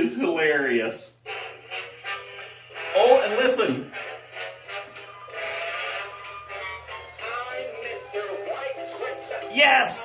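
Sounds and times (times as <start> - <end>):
toy playing song with singing: 1.2 - 10.0.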